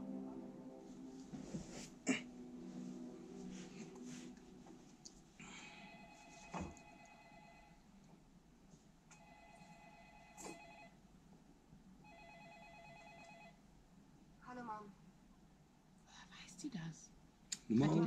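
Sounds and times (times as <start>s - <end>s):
telephone ringing on tv: 5.7s - 7.9s, 9.2s - 11.0s, 12.0s - 13.6s.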